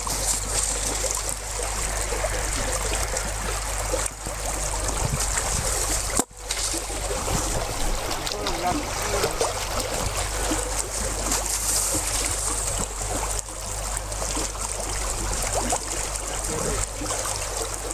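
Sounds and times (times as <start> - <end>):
water sloshing and trickling: 0.0 - 17.9
voices: 8.0 - 9.7, 16.2 - 17.1.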